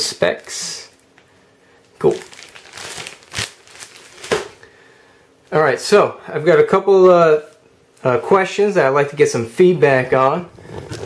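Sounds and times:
plastic wrap crinkling: 2.0 - 4.6.

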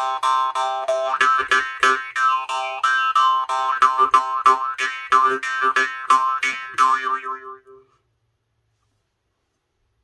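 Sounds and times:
jaw harp twanging: 0.0 - 7.8.

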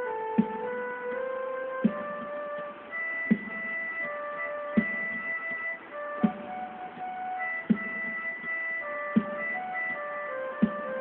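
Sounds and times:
electronic keyboard melody: 0.0 - 11.0
percussive beat: 0.3 - 1.2, 1.8 - 11.0.

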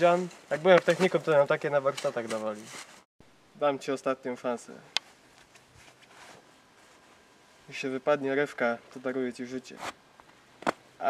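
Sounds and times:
person speaking: 0.0 - 2.9
faint outdoor background noise: 0.0 - 11.0.

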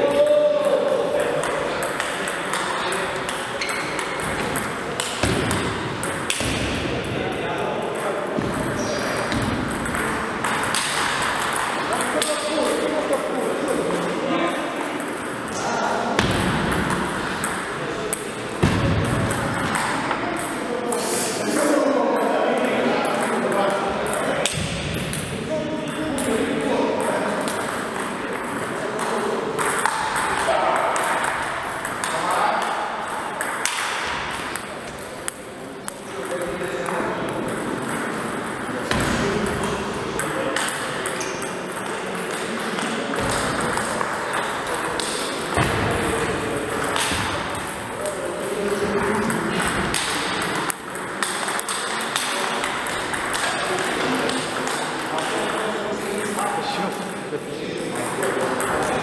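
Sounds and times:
people talking: 0.0 - 59.0.

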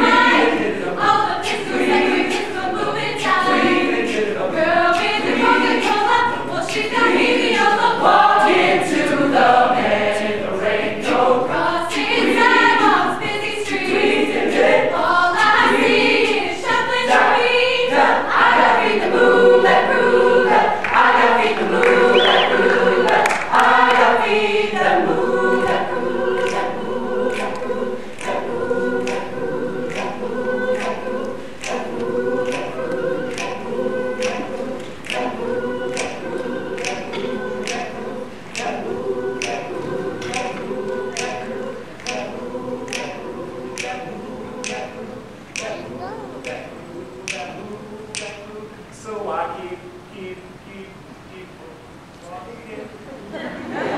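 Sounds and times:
choir singing a cappella: 0.0 - 53.9
clicking beat: 26.4 - 45.8, 46.4 - 48.5.

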